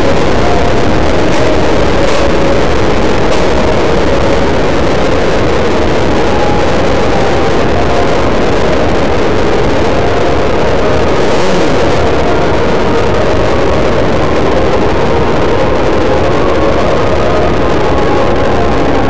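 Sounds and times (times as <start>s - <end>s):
loud rush of wind: 0.0s - 19.0s.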